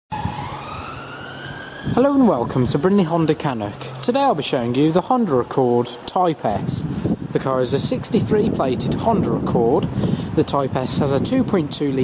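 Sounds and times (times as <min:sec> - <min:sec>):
rising siren-like wail: 0:00.1 - 0:03.4.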